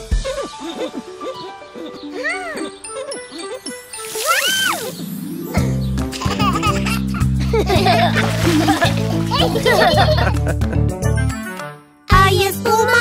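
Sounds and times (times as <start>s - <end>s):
children's song instrumental: 0.4s - 13.0s.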